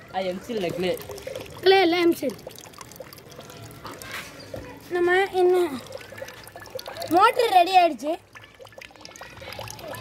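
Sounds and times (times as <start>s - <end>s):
water trickling in plastic bottle: 0.0s - 10.0s.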